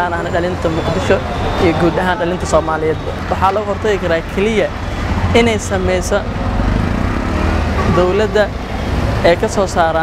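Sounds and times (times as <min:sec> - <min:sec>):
man speaking: 0:00.0 - 0:06.3, 0:07.8 - 0:08.6, 0:09.2 - 0:10.0
street traffic noise: 0:00.0 - 0:10.0.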